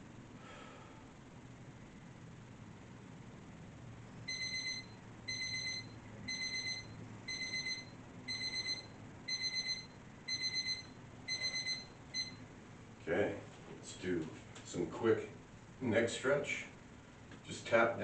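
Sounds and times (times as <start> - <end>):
digital timer alarm beeping: 4.3 - 12.4.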